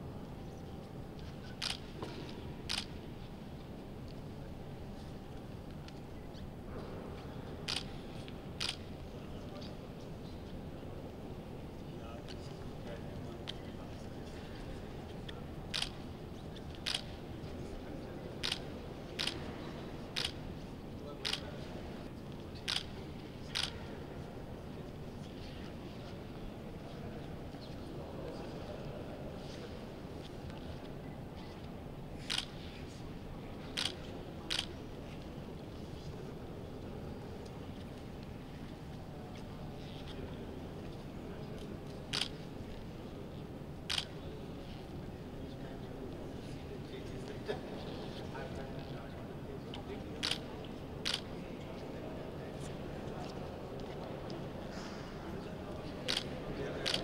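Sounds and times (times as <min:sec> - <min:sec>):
low room noise: 0:00.0 - 0:57.0
camera shutter click: 0:32.3 - 0:32.5, 0:33.8 - 0:34.7, 0:43.9 - 0:44.1, 0:56.1 - 0:57.0.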